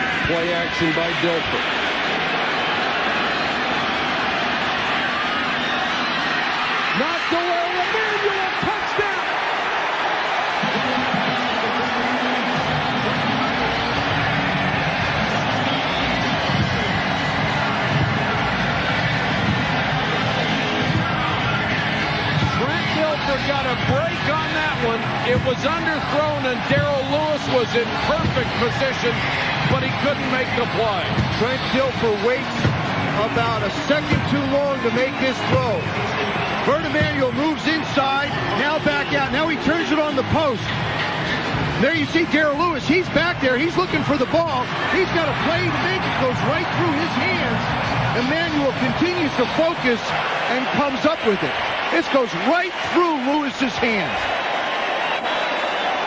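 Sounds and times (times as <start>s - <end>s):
stadium crowd cheering: 0.0s - 56.0s
people shouting: 1.6s - 30.2s.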